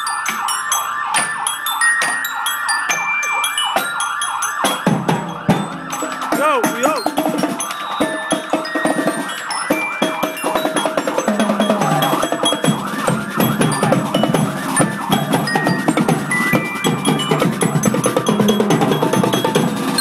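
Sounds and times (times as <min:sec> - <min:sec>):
glockenspiel ringing bright notes: 0:00.0 - 0:20.0
marching drumline playing: 0:00.0 - 0:20.0.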